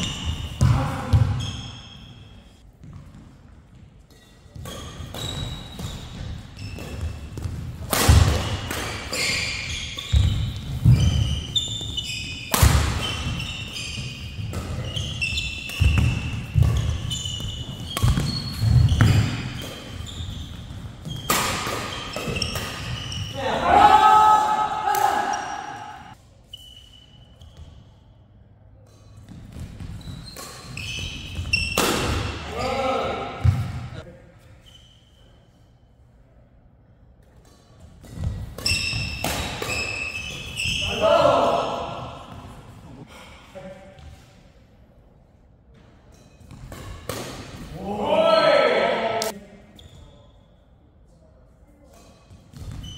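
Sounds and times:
shoes squeaking on court floor: 0.0 - 23.9, 24.5 - 28.2, 28.8 - 35.7, 37.4 - 43.0, 48.3 - 50.6, 52.0 - 52.9
rackets striking shuttlecock: 17.8 - 20.0
player shouting: 23.4 - 26.1, 40.8 - 41.9, 47.8 - 49.3.

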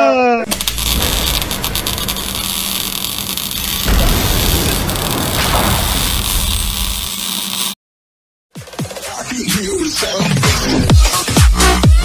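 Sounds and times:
loud deep sound: 0.5 - 7.2
electric buzzing hiss: 0.5 - 7.8
low hum: 0.5 - 7.8.

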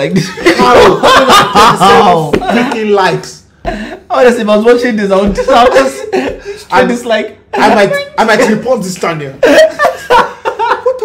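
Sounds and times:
men laughing: 0.0 - 4.4, 5.1 - 11.0.

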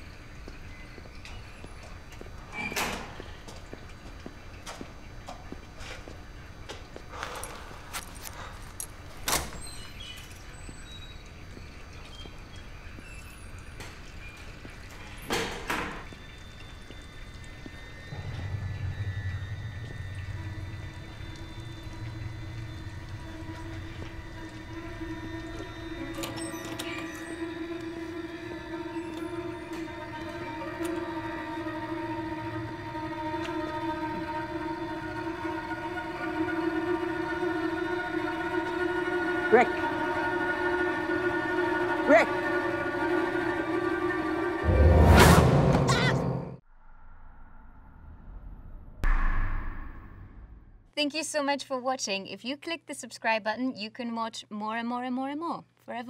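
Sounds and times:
droning tones: 10.3 - 46.6
low rumble: 18.0 - 50.9.

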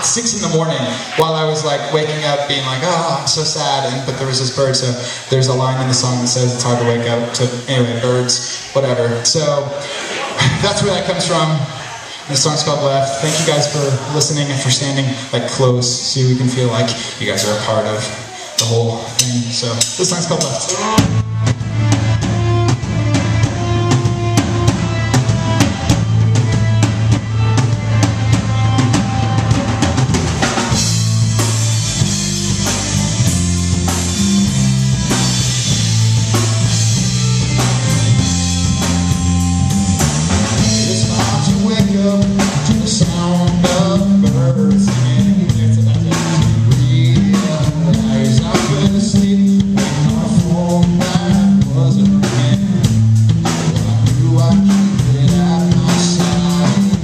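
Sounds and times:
rock band playing live: 0.0 - 57.0
drum kit: 9.8 - 57.0
cymbals washing: 16.8 - 43.7.

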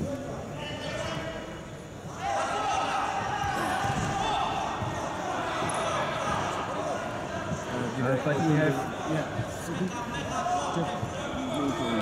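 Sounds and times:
voices echoing in a hall: 0.0 - 12.0.

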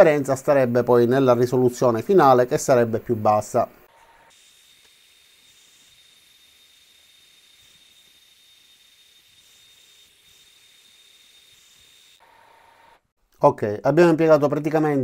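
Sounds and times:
low hiss: 0.0 - 3.9
laser engraver high-pitched whine: 3.8 - 13.0.

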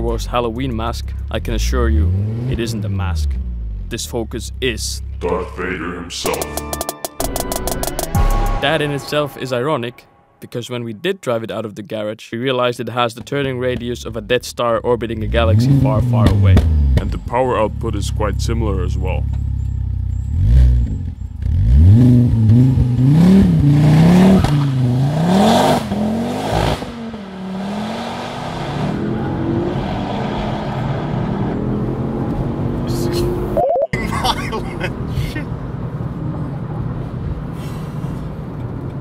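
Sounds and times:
car engine revving: 1.0 - 5.3, 15.0 - 19.0, 20.0 - 35.1.

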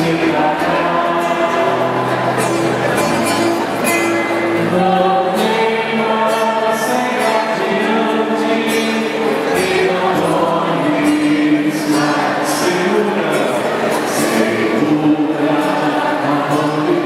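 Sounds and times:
group of people singing: 0.0 - 2.9, 4.2 - 17.0.

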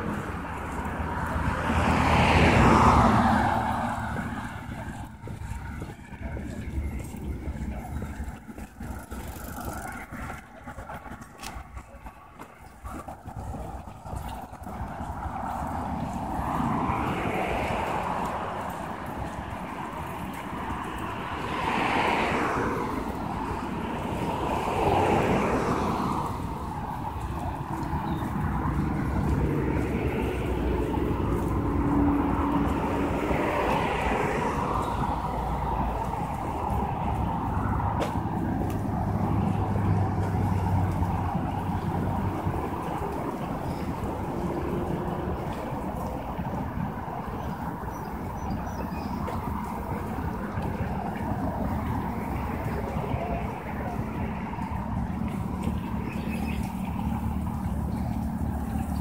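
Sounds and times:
cars passing: 0.0 - 59.0
low engine hum: 0.0 - 59.0.

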